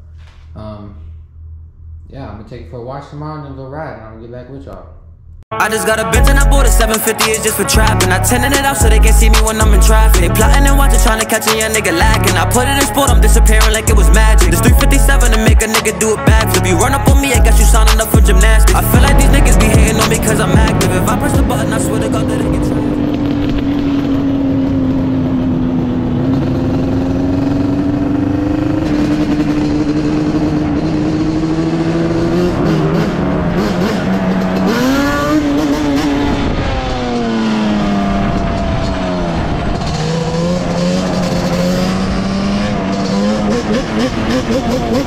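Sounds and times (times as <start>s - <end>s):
two-stroke engine running: 16.3s - 36.0s, 37.2s - 45.0s.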